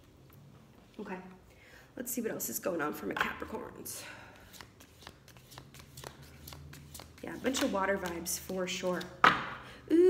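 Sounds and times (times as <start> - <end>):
cards being shuffled: 4.4 - 9.3.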